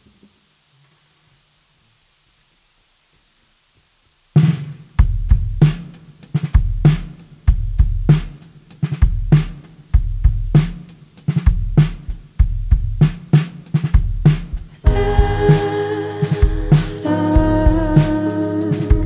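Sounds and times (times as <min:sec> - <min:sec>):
drum kit groove: 0:04.3 - 0:19.0
deep low booms: 0:14.9 - 0:19.0.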